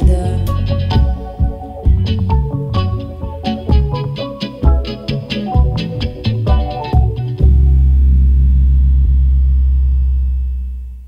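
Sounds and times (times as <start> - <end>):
deep synthesizer bass note: 0.0 - 4.1, 5.6 - 11.0.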